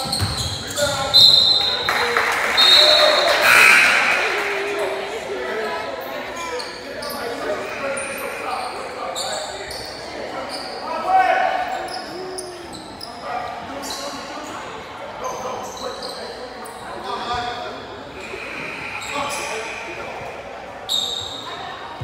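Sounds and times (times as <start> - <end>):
basketball bouncing: 0.0 - 0.9
sneakers squeaking on hardwood: 0.0 - 1.4
people calling out: 2.6 - 5.5.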